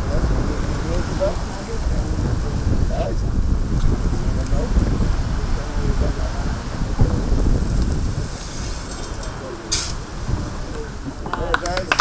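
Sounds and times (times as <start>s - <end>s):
wind rumble on microphone: 0.0s - 12.0s
shovels digging gravelly soil: 7.6s - 10.0s.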